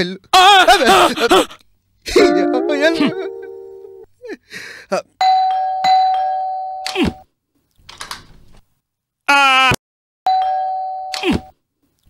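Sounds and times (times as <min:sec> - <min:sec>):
doorbell chime: 0:02.2 - 0:04.1, 0:05.2 - 0:06.9, 0:10.3 - 0:11.2.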